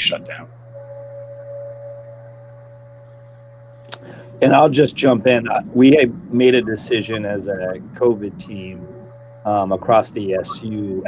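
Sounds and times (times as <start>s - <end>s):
faint high steady tone: 0.0s - 11.0s
steady low hum: 0.0s - 11.0s.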